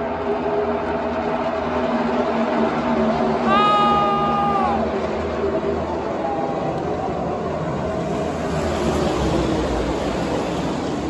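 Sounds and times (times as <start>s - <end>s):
racing car engines at speed: 0.0s - 11.0s.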